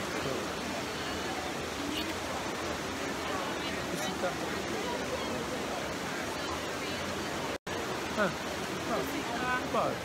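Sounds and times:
crowd voices: 0.0 - 10.0
fountain water cascading: 0.0 - 10.0.

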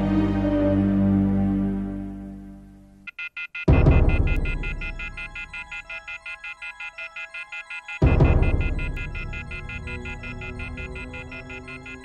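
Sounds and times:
low musical drone: 0.0 - 2.9
telephone off-hook warning tone: 3.2 - 12.0.

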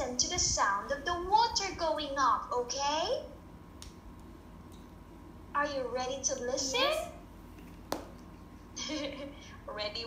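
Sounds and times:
sharp tap: 7.9 - 8.2
person laughing: 8.8 - 9.5.

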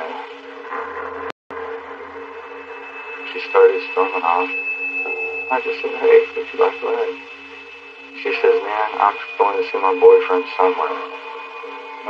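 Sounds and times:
steady hum: 0.0 - 12.0
man talking on a phone line: 3.3 - 7.2, 8.2 - 11.1.

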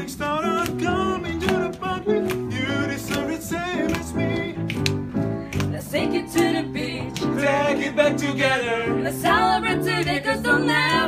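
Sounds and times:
choir singing pop song: 5.7 - 11.0.

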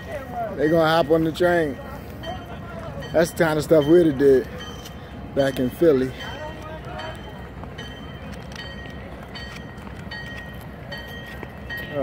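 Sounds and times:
distant train bell ringing: 0.0 - 12.0.

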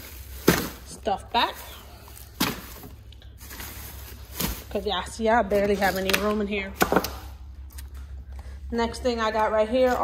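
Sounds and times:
plastic rustle: 0.0 - 6.3.

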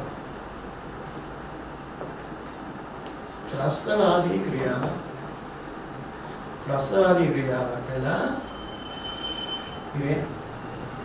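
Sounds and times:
high-pitched whine: 0.0 - 2.6, 6.6 - 11.0.

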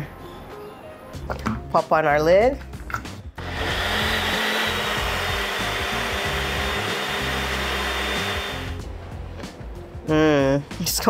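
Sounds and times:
blender motor whine: 3.4 - 8.8.

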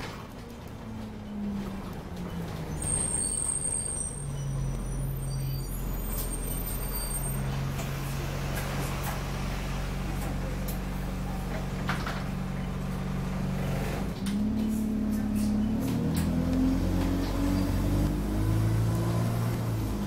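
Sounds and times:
bus engine drone: 0.0 - 20.0.

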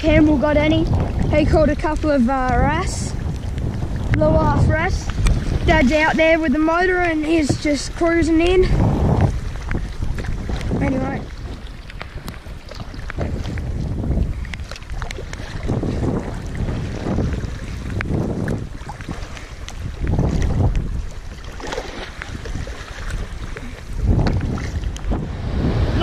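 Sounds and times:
water splashing around kayak: 0.0 - 26.0
wind buffeting microphone: 0.0 - 26.0.

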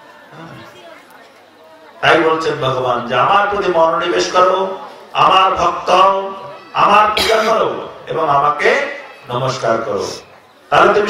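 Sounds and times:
faint chatter of voices: 0.0 - 11.0
amplified lecture speech: 2.0 - 9.0.

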